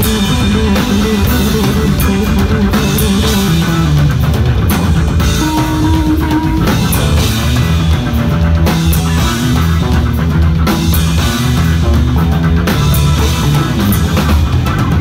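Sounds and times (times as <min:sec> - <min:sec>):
drum kit: 0:00.0 - 0:15.0
electric bass: 0:00.0 - 0:15.0
electric guitar: 0:00.0 - 0:15.0.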